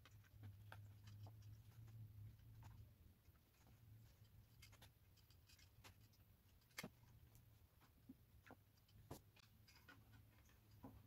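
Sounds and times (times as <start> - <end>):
wire clicking and scratching: 0.0 - 11.0.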